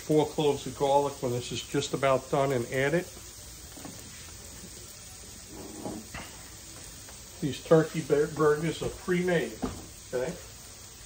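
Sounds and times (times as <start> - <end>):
onions sizzling in frying pan: 0.0 - 11.0.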